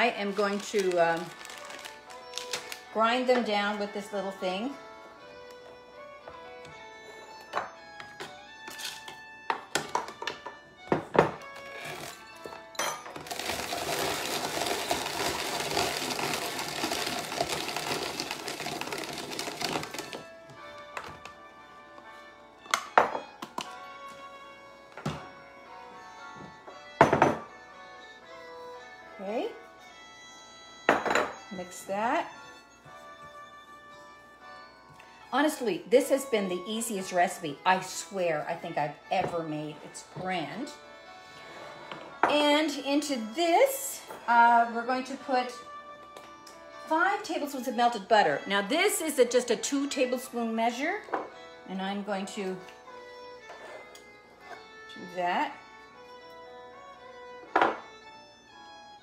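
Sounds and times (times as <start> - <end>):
soft background music: 0.0 - 59.0
drum grater grating almonds: 13.2 - 20.2.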